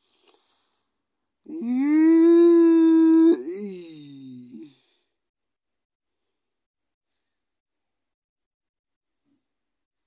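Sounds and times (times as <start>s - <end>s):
woman crying out high: 1.5s - 3.9s.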